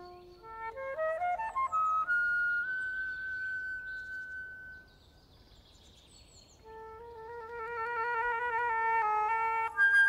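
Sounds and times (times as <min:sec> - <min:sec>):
faint bird chirps: 0:00.0 - 0:08.1
long held flute note: 0:06.6 - 0:10.0.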